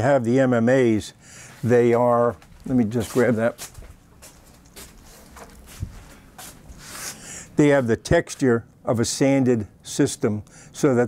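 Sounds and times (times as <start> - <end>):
soft handling knocks and rustles: 1.6 - 6.8.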